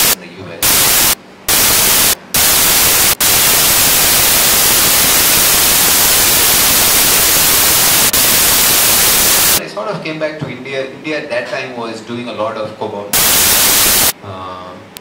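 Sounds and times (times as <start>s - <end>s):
loud static hiss: 0.0s - 9.8s, 13.1s - 14.3s.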